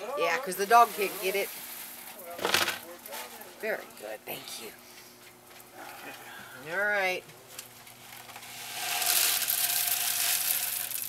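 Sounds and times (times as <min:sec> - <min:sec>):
soil pouring gritty hiss: 0:08.7 - 0:11.0.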